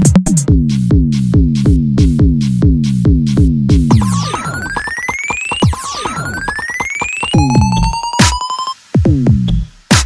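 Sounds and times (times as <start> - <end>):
dubstep electronic music: 0.0 - 10.0.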